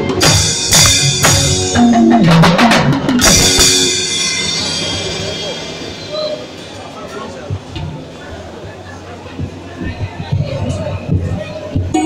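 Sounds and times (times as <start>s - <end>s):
drum kit strikes: 0.0s - 8.0s
band playing chords: 0.0s - 8.8s
cymbal ringing: 3.2s - 7.4s.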